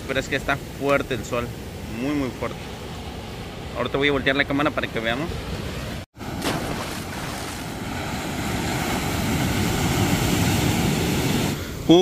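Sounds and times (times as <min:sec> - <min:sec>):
waves breaking on beach: 0:05.3 - 0:12.0.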